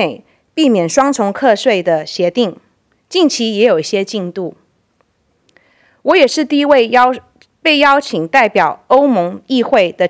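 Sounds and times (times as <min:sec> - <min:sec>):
woman speaking into a microphone: 0:00.0 - 0:04.6, 0:06.0 - 0:10.0
soft intake of breath: 0:05.5 - 0:06.0.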